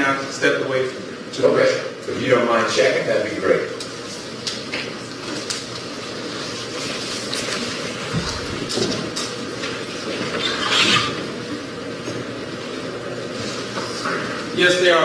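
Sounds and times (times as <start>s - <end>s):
room noise: 0.0s - 15.0s.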